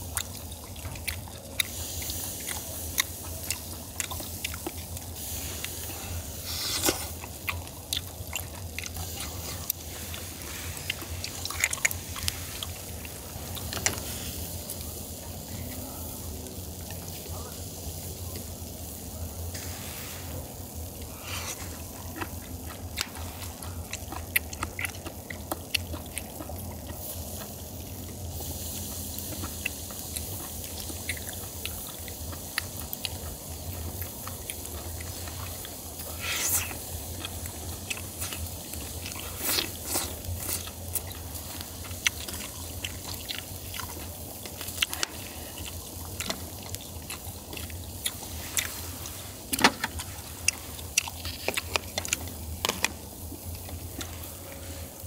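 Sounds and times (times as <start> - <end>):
chewing: 0.0 - 55.0
steady hiss: 0.0 - 55.0.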